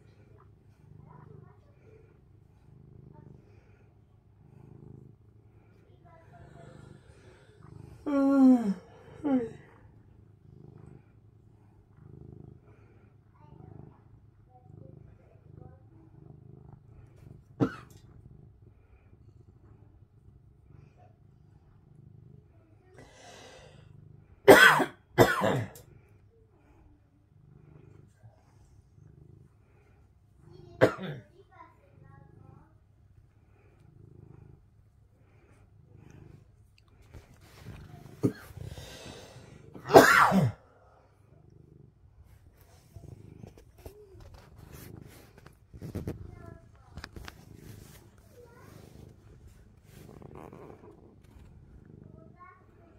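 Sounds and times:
cat purring: 0.0s - 52.9s
soft rustling: 36.1s - 39.8s, 42.2s - 51.9s.

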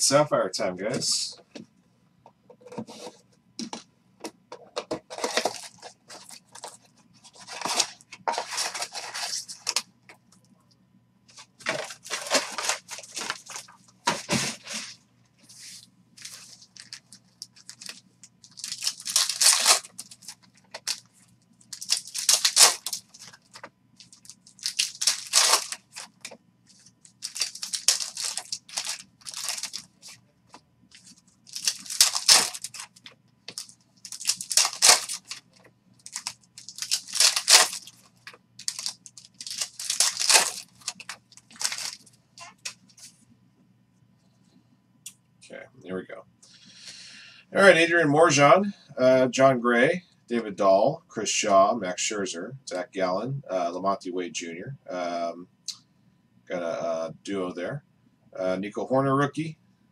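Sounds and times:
foil wrappers torn and crinkled: 5.2s - 9.9s, 11.6s - 14.9s, 16.2s - 30.1s, 30.9s - 42.8s.

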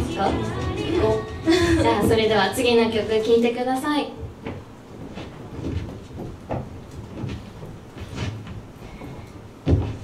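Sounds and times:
low room noise: 0.0s - 10.0s
soft knocks and thumps: 4.4s - 10.0s.

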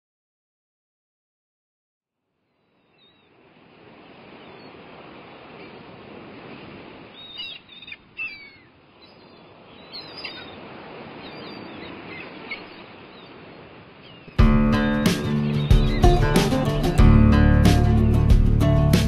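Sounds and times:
birds chirping: 2.5s - 5.9s, 7.0s - 18.8s.

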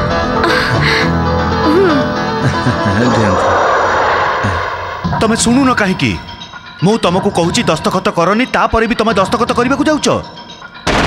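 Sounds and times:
dramatic rushing whoosh: 2.7s - 6.8s.

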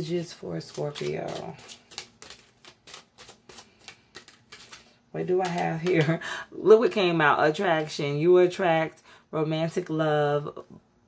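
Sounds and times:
cards being shuffled: 0.1s - 6.0s.

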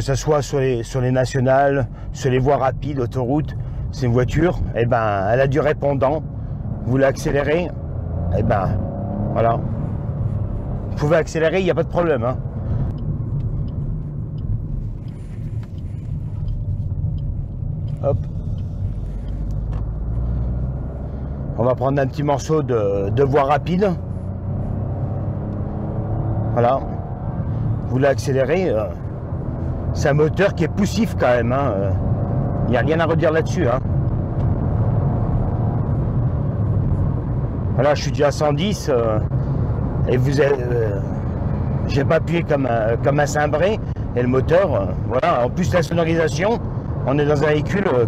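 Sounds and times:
car engine and road rumble: 0.0s - 48.0s
faint regular ticking: 11.7s - 20.4s.

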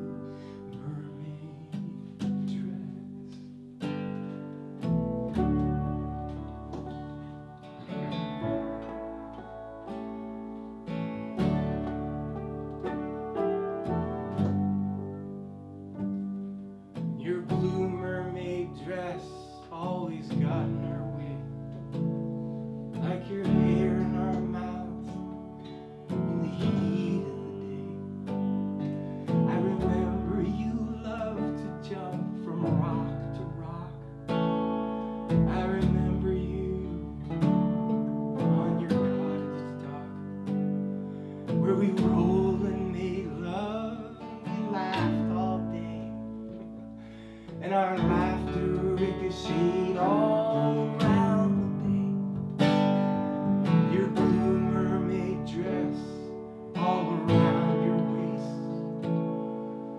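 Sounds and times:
man singing: 0.0s - 3.6s, 17.2s - 22.0s, 23.0s - 28.4s, 29.2s - 34.2s, 35.3s - 37.5s, 38.4s - 40.4s, 41.5s - 52.9s, 53.7s - 59.0s
strummed acoustic guitar: 0.0s - 59.9s.

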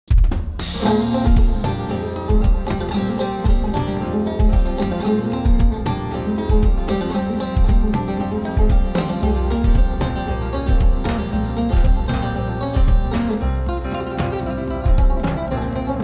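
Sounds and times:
drums and bass beat: 0.1s - 16.0s
plucked lute melody: 0.7s - 16.0s.

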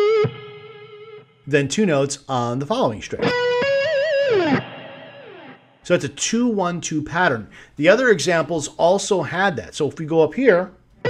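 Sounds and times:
distorted electric guitar: 0.0s - 1.5s, 3.2s - 5.8s.

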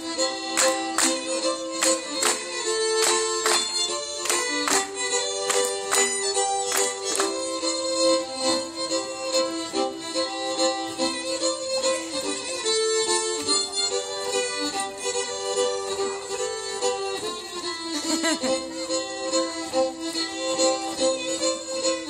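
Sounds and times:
fiddles playing folk dance tune: 0.0s - 22.0s.

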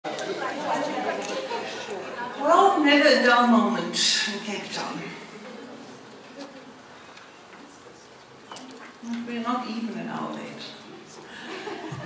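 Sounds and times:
chatter of people talking: 0.0s - 12.0s.

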